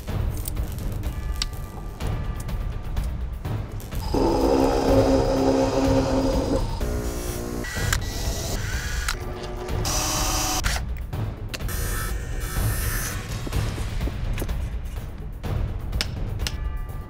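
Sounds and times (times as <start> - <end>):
background music: 0.0 - 17.0
drill press boring aluminium: 4.0 - 6.8
chop saw cutting metal: 4.0 - 9.2.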